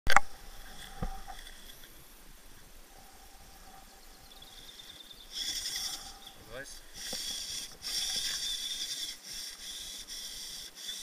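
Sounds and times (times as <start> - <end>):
toy car electric motor whining: 5.3 - 6.2, 7.0 - 11.0.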